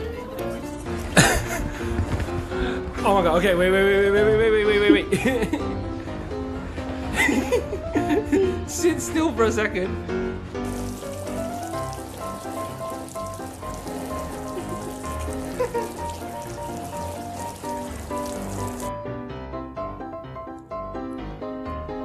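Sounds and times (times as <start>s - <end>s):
background music: 0.0s - 22.0s
water pattering into paddling pool: 10.6s - 18.9s.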